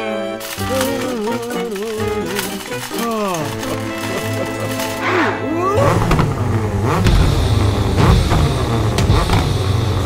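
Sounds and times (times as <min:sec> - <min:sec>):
background music: 0:00.0 - 0:10.0
cartoon truck engine revving: 0:03.2 - 0:10.0.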